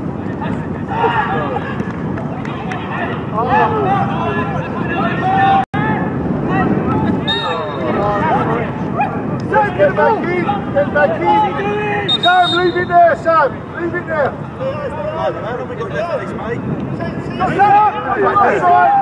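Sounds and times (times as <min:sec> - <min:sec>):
people shouting and calling: 0:00.2 - 0:16.2, 0:17.0 - 0:19.0.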